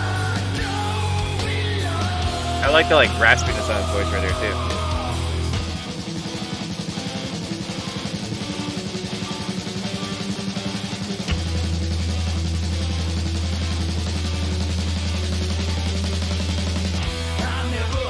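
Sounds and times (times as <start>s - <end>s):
distorted electric guitar: 0.0s - 18.0s
drum kit: 0.0s - 18.0s.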